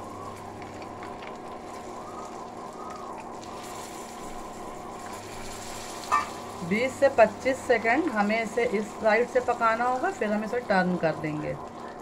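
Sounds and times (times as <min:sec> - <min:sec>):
faint low hum: 0:00.0 - 0:12.0
butter sizzling in a pan: 0:00.3 - 0:11.4.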